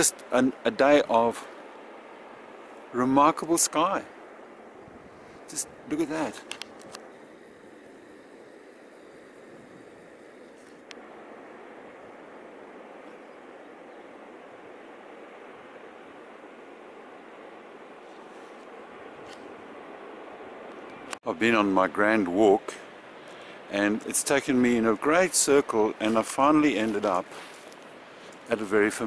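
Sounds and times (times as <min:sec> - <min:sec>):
outdoor background hiss: 0:00.0 - 0:29.0.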